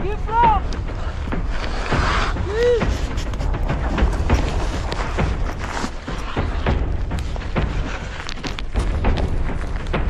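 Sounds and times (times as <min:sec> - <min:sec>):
gear knocking and scraping on rock: 0:00.0 - 0:10.0
wind rumbling on microphone: 0:00.0 - 0:10.0.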